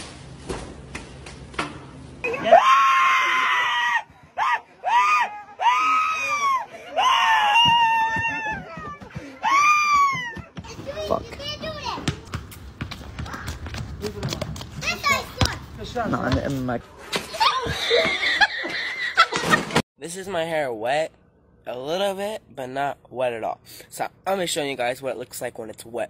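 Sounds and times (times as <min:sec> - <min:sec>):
person screaming: 0:02.3 - 0:08.7.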